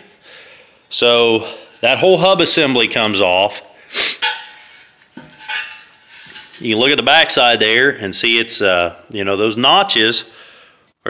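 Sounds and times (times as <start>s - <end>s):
iron wheel hub clanking: 4.2s - 6.8s.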